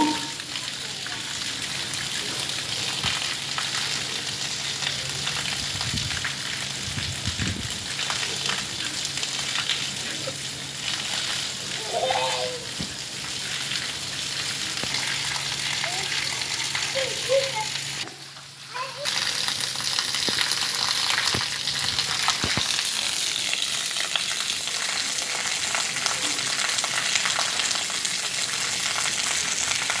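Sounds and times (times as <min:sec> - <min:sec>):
rain on tiles: 0:00.0 - 0:30.0.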